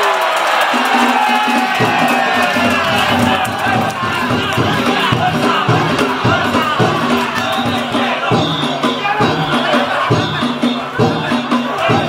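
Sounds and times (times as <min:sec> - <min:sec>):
crowd shouting together: 0:00.0 - 0:12.0
festival music of drums and gongs: 0:00.5 - 0:12.0.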